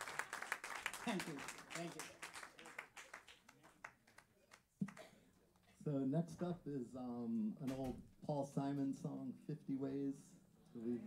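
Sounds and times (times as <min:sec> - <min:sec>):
audience clapping: 0:00.0 - 0:05.1.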